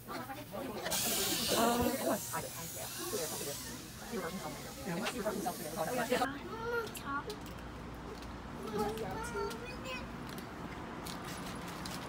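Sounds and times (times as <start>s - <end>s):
dental equipment hissing: 0.9s - 6.3s.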